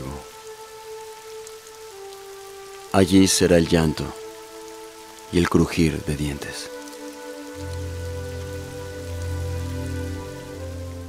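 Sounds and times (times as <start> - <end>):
rain-like hiss: 0.0 - 11.0
ambient music pad: 4.0 - 11.0.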